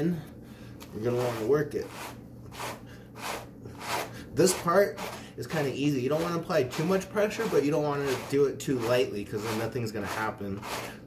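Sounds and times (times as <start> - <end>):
wool carders scratching: 1.0 - 11.0.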